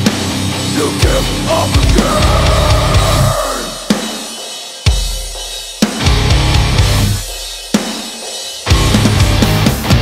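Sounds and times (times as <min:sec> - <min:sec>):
drum hits with cymbal: 0:00.0 - 0:10.0
metalcore band: 0:00.0 - 0:10.0.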